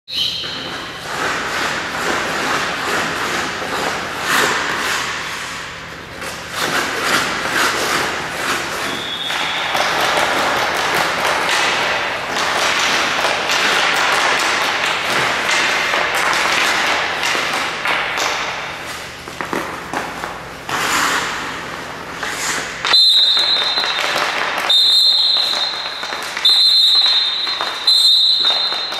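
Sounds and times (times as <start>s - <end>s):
hockey stick tapping puck: 0.2s - 28.9s
skate blades scraping on ice: 0.3s - 28.9s.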